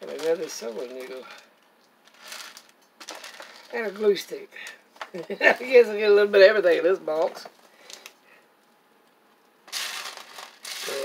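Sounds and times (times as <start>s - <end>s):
plastic beads rattling in tray: 2.0s - 4.1s, 9.7s - 11.0s.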